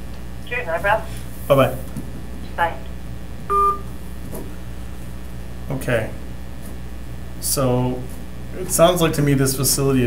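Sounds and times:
telephone two-tone beep: 3.5s - 3.9s.

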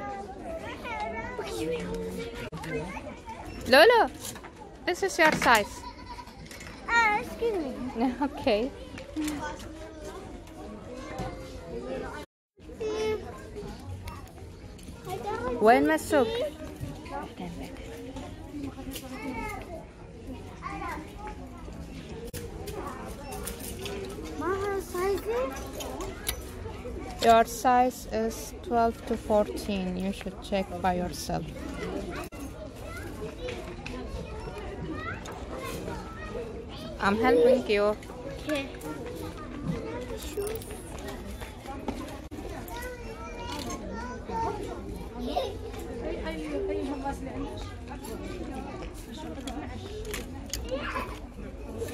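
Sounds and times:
children's voices: 0.0s - 3.6s, 5.2s - 29.7s, 30.4s - 51.9s
people chattering: 0.0s - 51.9s
shop background hum: 0.0s - 51.9s
child talking: 5.8s - 7.9s, 12.8s - 13.4s, 24.4s - 26.2s, 34.2s - 37.7s, 42.6s - 45.8s.

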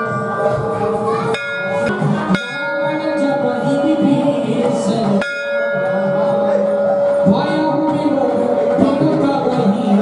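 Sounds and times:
temple bell ringing: 0.0s - 10.0s.

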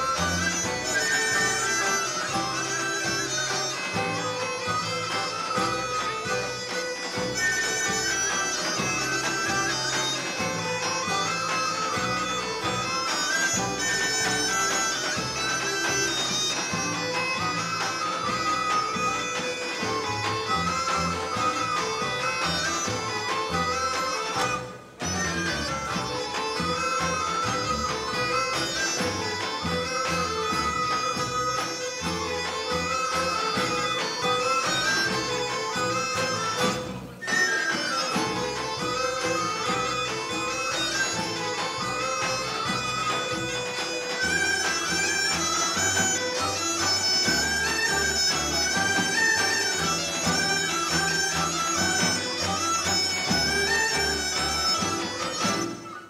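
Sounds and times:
reedy wind instrument melody: 0.0s - 56.0s.

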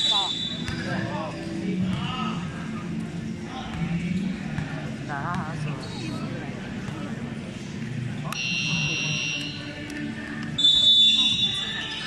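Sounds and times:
referee's whistle blast: 0.0s - 0.7s, 10.6s - 11.9s
crowd chatter: 0.0s - 12.0s.

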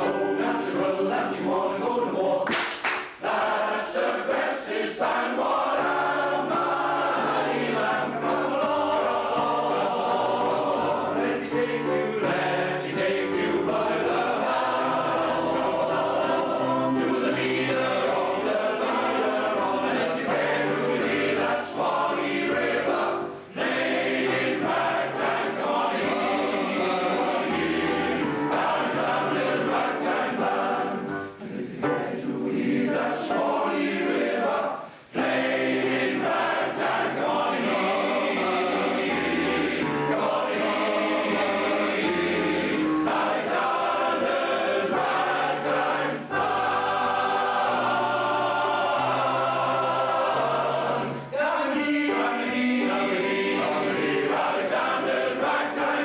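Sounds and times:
piano accompaniment: 0.0s - 2.4s, 3.1s - 56.0s
male choir singing in harmony: 0.0s - 56.0s.

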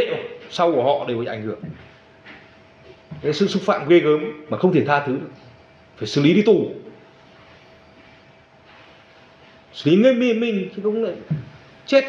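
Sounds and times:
thin steady hum: 0.0s - 12.0s.

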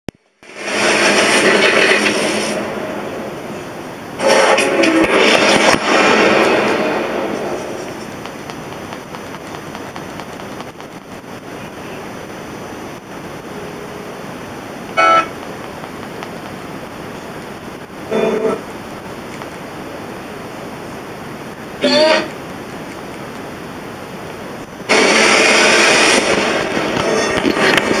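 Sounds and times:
television hiss: 0.1s - 28.0s
crackling burst: 0.3s - 28.0s
loud rush of noise: 0.4s - 28.0s
sharp crackles: 4.2s - 11.6s, 24.9s - 28.0s.

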